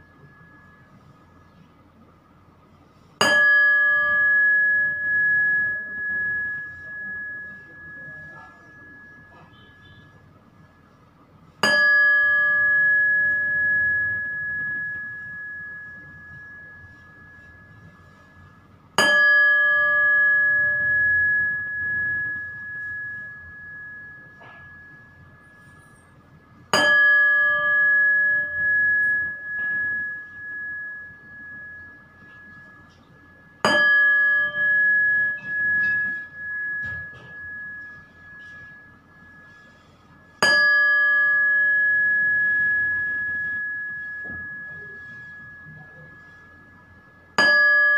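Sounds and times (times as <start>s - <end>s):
meditation bell ringing: 0.0s - 1.7s, 3.2s - 10.9s, 11.6s - 47.9s.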